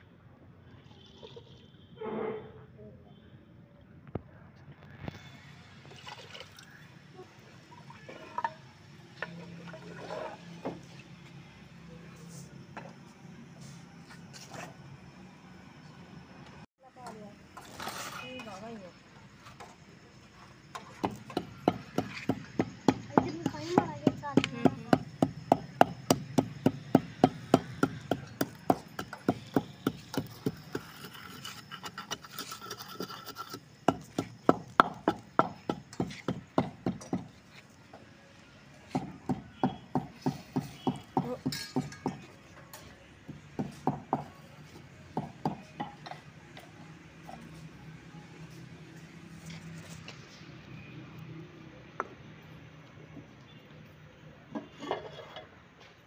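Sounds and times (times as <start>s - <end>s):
pestle pounding in mortar: 21.0s - 31.2s, 33.8s - 37.3s.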